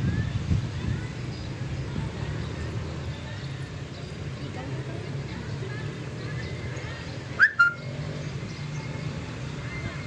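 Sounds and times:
low outdoor rumble: 0.0 - 10.0
two-note whistle: 7.4 - 7.8.

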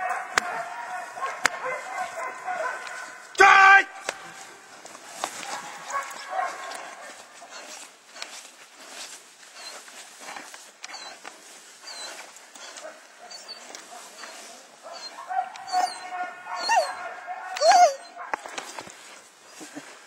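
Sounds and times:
scuffling: 0.0 - 20.0
dog heavy breathing: 5.4 - 18.1
dog whining: 10.9 - 11.2, 11.8 - 18.2.

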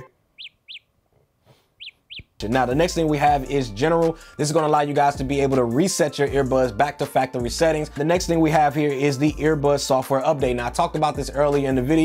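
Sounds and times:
earbuds locator chirps: 0.0 - 0.9, 1.5 - 3.0.

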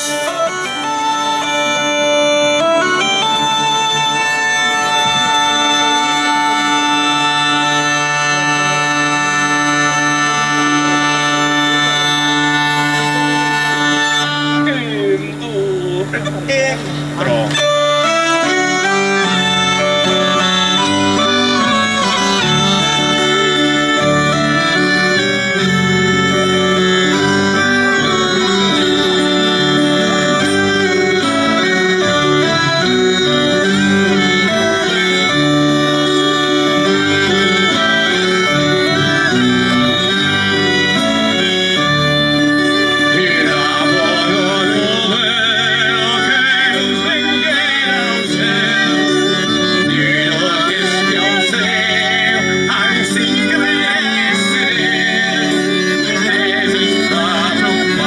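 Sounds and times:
accordion: 0.0 - 58.0
bass line: 0.0 - 58.0
hurdy-gurdy dance tune: 0.0 - 58.0.

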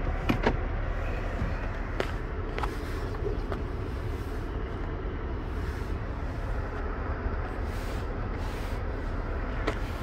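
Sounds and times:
car cabin idle rumble: 0.0 - 10.0.

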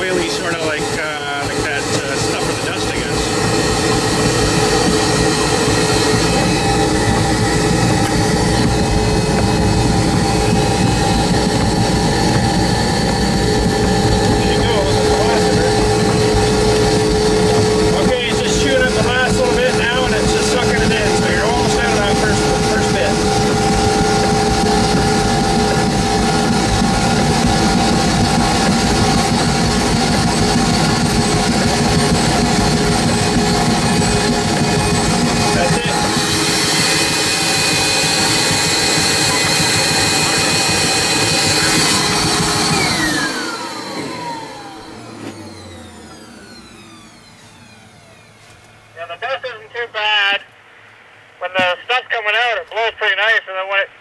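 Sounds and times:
machine spinning down whine: 0.0 - 50.1
insulation blowing machine running: 0.0 - 50.3.

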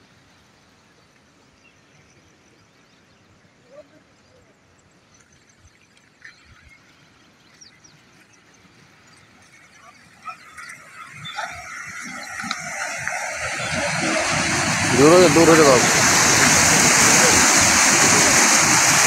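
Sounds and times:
floodwater rushing: 8.4 - 19.0.

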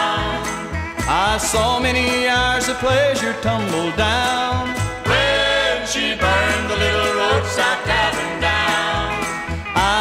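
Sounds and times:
country band music: 0.0 - 10.0.

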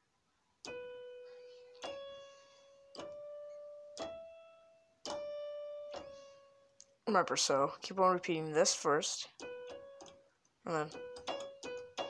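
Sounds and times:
electronic keyboard slow melody: 0.6 - 7.0, 9.4 - 12.0.

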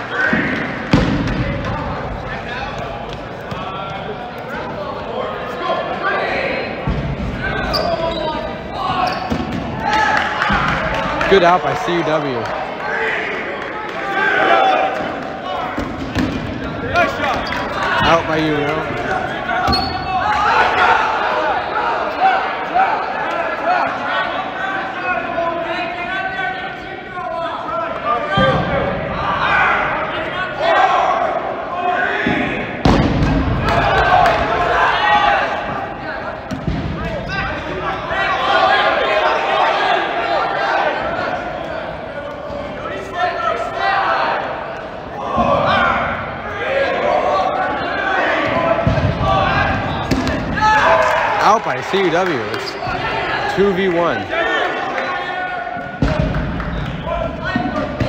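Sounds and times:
players shouting and chatter: 0.0 - 58.0
balls bouncing and thudding: 0.3 - 1.8, 15.7 - 17.6.

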